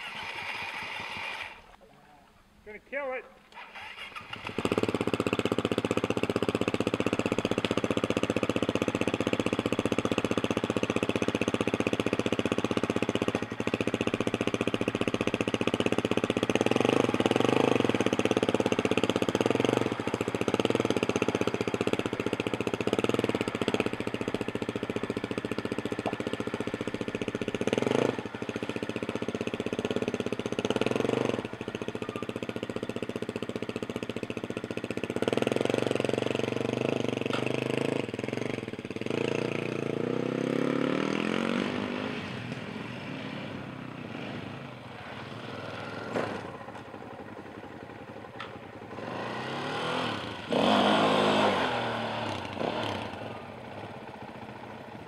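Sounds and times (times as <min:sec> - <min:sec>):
dirt bike engine revving: 0:00.0 - 0:01.7, 0:03.6 - 0:46.7, 0:48.9 - 0:54.5.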